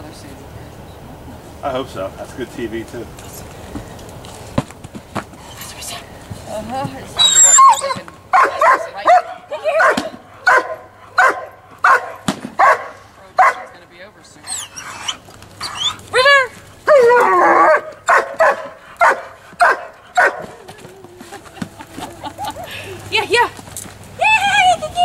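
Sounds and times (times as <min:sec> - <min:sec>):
dog gliding calls: 0:07.2 - 0:13.7, 0:14.4 - 0:25.0
dog barking: 0:08.3 - 0:13.7, 0:16.9 - 0:20.6.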